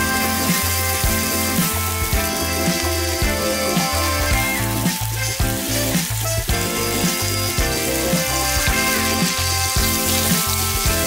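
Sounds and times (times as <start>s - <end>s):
background music with bass beat: 0.0s - 11.0s
fish sizzling in a frying pan: 0.0s - 11.0s.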